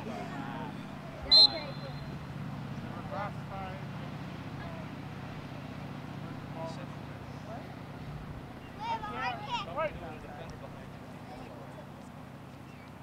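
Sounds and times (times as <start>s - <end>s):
faint distant voices: 0.0s - 13.0s
sharp whistle blast: 1.2s - 2.2s.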